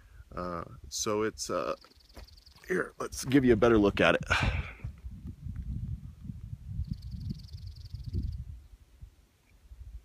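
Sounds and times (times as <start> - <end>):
wind buffeting microphone: 2.3 - 10.0.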